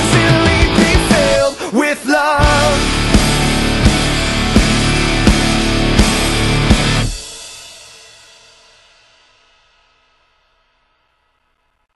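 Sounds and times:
rock band final chord ringing: 0.0s - 1.7s, 2.4s - 8.0s.

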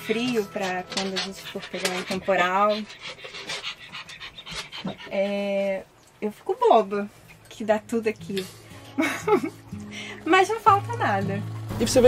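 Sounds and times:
dog panting: 0.1s - 5.6s.

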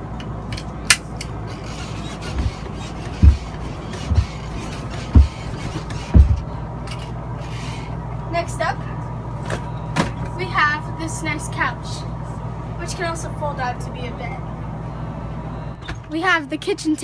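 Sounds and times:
steady low hum: 0.0s - 16.8s
rocker chair thumping: 2.2s - 6.5s.

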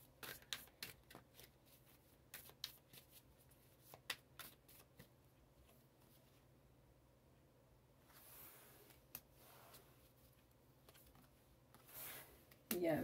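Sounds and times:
cards being shuffled: 0.1s - 5.1s, 10.8s - 12.8s.

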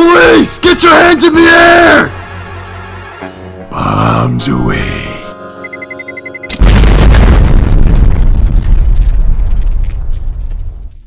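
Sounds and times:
rapid electronic beeping: 2.4s - 3.6s, 5.4s - 6.5s
bomb explosion rumble: 6.6s - 11.0s.

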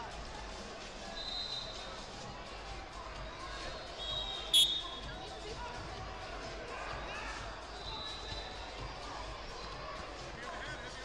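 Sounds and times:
sports hall chatter: 0.0s - 11.0s.

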